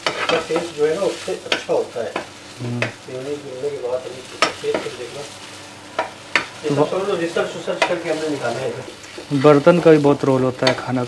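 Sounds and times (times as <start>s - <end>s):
spatula scraping a pan: 0.0s - 2.3s
meat sizzling in a pan: 0.0s - 11.0s
utensil knocking against pan: 7.7s - 8.0s.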